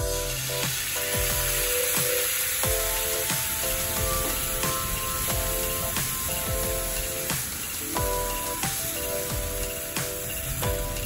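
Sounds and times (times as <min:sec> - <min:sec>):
soy sauce sizzling in frying pan: 0:00.0 - 0:11.0.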